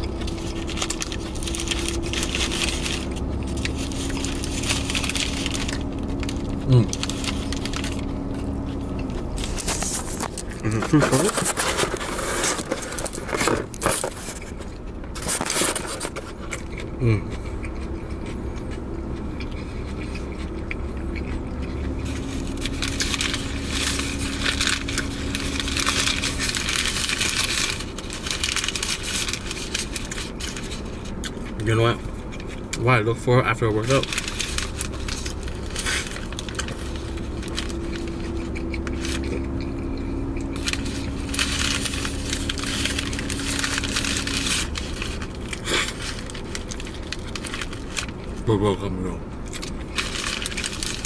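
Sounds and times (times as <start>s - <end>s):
foil wrapper crinkling: 0.0s - 18.2s, 18.8s - 48.8s, 49.4s - 51.0s
man chewing: 0.0s - 32.8s, 34.0s - 48.5s, 49.2s - 51.0s
steady low hum: 0.0s - 51.0s
man humming mmm: 6.6s - 7.1s, 10.5s - 11.3s, 17.0s - 17.4s.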